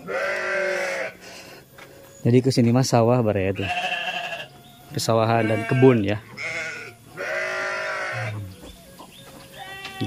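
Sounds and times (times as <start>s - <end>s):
sheep bleating: 0.0s - 1.2s, 3.5s - 4.5s, 5.4s - 8.5s, 9.6s - 10.0s.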